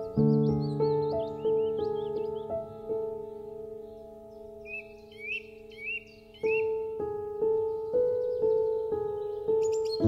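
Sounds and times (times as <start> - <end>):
slow piano music: 0.0 - 10.0
small bird chirping: 0.0 - 10.0.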